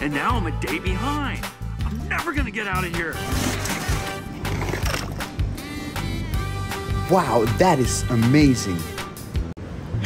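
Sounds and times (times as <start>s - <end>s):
film music with held tones: 0.0s - 10.0s.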